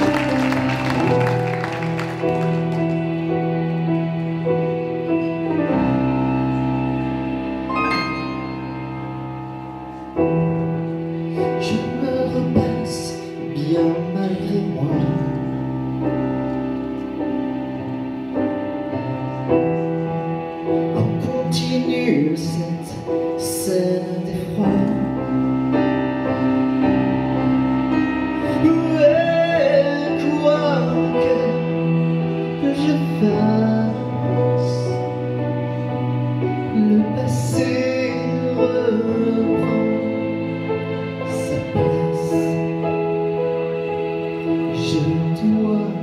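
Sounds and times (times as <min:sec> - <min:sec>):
fuller lower accompaniment: 0:00.0 - 0:46.0
keyboard chord with deep bass: 0:00.0 - 0:46.0
keyboard melody notes: 0:00.0 - 0:46.0
person singing: 0:10.0 - 0:17.8, 0:18.5 - 0:46.0.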